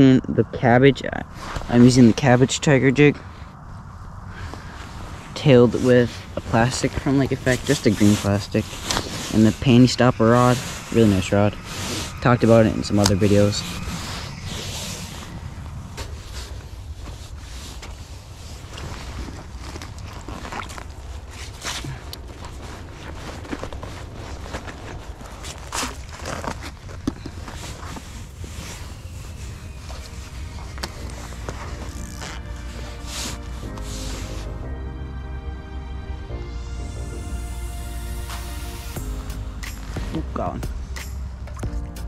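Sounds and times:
wind rumbling on microphone: 0.0 - 34.6
crunches on snow and ice: 1.0 - 34.6
background music: 28.6 - 42.0.

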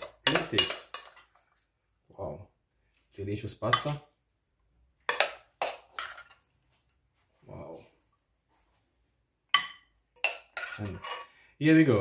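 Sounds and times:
metal spoon scraping pot: 0.0 - 1.4, 9.6 - 11.4.

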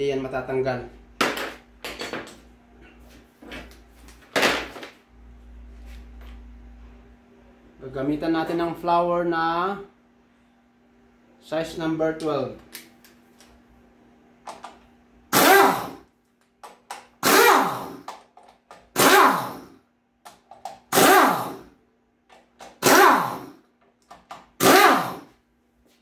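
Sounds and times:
pneumatic air ratchet bursts: 15.3 - 16.0, 17.2 - 18.1, 19.0 - 19.7, 20.9 - 21.6, 22.8 - 23.6, 24.6 - 25.3.

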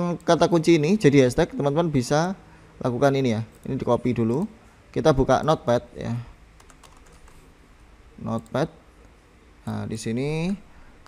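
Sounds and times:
keyboard typing: 6.6 - 7.5.

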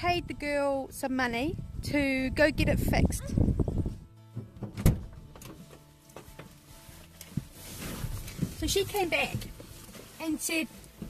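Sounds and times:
clothing rustle and small knocks: 4.3 - 11.0
car door latch click: 4.4 - 5.6
thump on car seat: 4.4 - 5.6.

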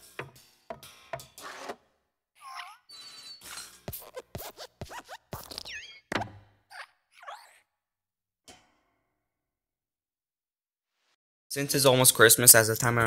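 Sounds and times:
springy squeaks and creaks: 0.0 - 7.6.

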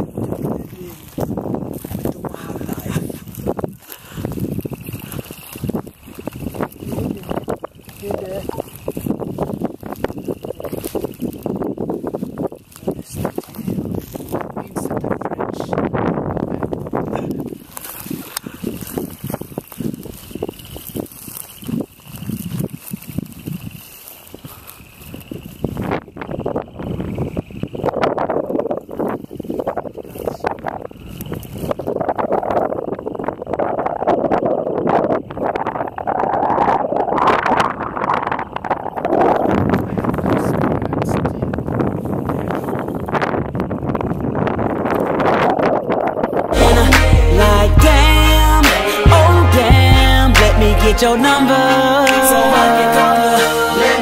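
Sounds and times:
footsteps through dry grass: 0.0 - 15.2, 15.8 - 26.8
wind buffeting microphone: 0.0 - 54.0.

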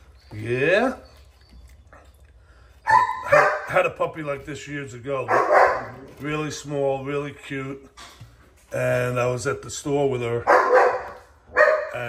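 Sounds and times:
dog barking: 2.9 - 3.8, 5.3 - 6.0, 10.4 - 12.0.

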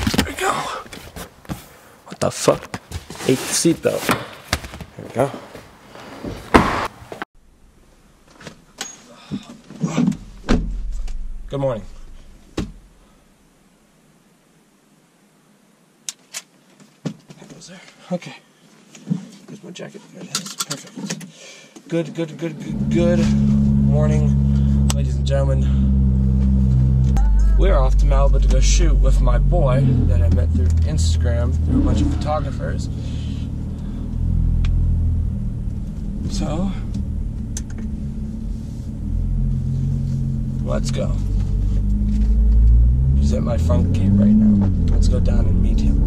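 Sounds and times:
low rumble: 10.2 - 13.6, 22.6 - 46.0
car engine hum from inside: 22.6 - 46.0.

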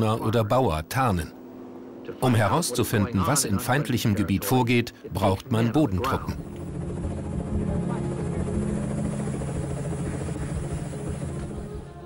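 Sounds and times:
helicopter rotor drone: 0.0 - 12.0.

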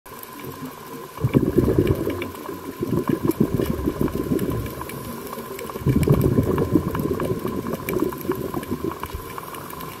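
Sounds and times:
underwater air bubbles: 0.1 - 10.0.

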